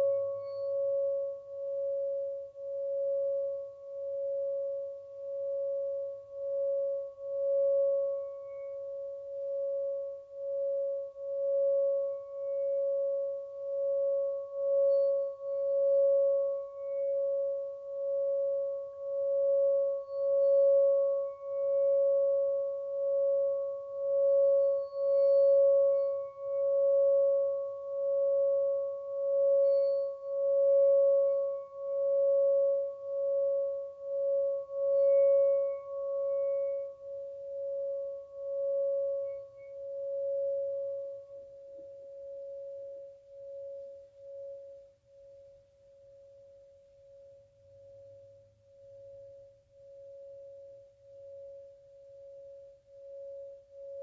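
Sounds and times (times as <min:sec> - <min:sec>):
singing bowl humming: 0:00.0 - 0:54.0.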